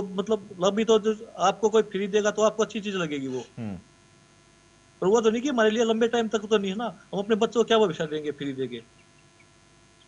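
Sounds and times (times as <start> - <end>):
man speaking: 0.0 - 3.8, 5.0 - 8.8
faint electrical hum: 0.0 - 10.0.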